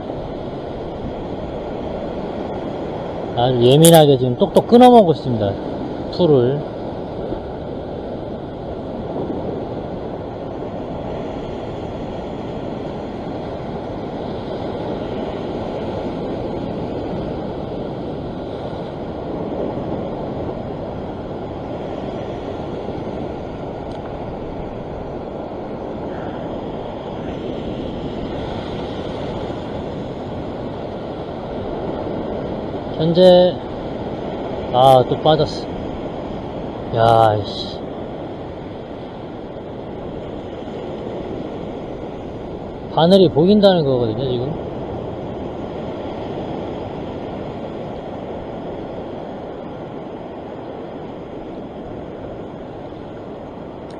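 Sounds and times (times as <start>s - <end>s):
ocean surf washing over rocks: 0.0s - 53.9s.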